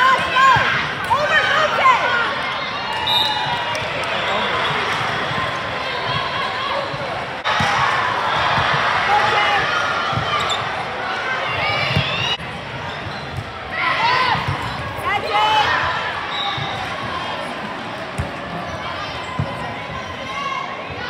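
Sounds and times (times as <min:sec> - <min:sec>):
sneakers squeaking: 0:10.0 - 0:10.9, 0:11.6 - 0:13.7.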